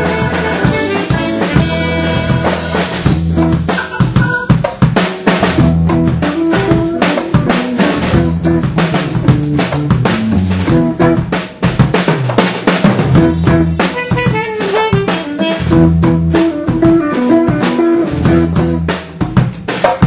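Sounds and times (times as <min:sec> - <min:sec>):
bass line: 0:00.0 - 0:19.8
funk band playing: 0:00.0 - 0:20.0
snare and kick drum hits: 0:00.0 - 0:20.0.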